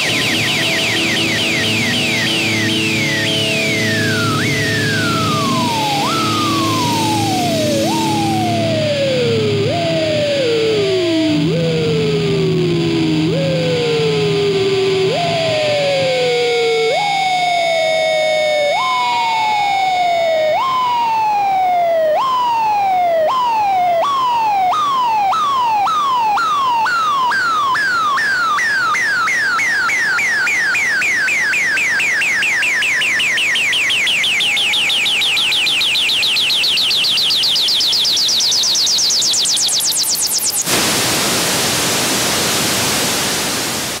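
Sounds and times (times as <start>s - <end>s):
rising electronic whine: 0.0s - 35.3s
falling siren-like electronic tone: 0.0s - 40.8s
loud wash of hiss: 40.7s - 44.0s.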